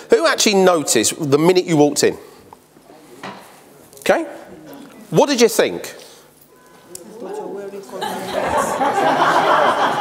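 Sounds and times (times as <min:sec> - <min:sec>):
man speaking: 0:05.1 - 0:06.2.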